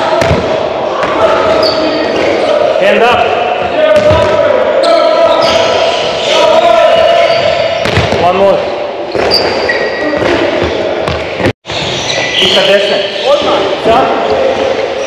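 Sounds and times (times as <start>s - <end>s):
handball hitting goal and floor: 0.1s - 2.3s, 3.6s - 4.4s, 7.8s - 8.4s, 9.1s - 12.0s.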